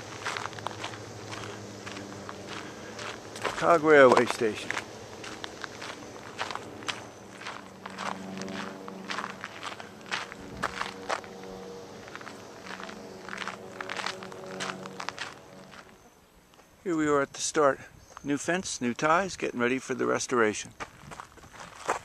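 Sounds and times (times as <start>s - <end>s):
footsteps crunching on dirt trail: 0.0s - 16.8s, 18.0s - 19.2s, 20.7s - 22.0s
faint low hum: 0.0s - 21.1s.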